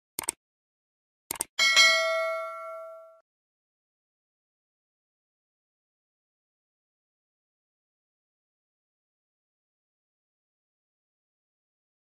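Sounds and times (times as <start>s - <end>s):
mouse clicks: 1.3s - 1.5s
bell ding: 1.6s - 3.2s.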